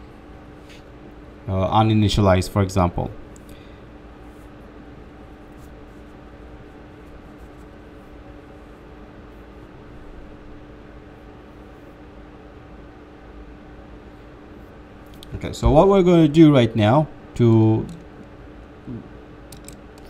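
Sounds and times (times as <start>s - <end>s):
constant low hum: 0.0s - 20.0s.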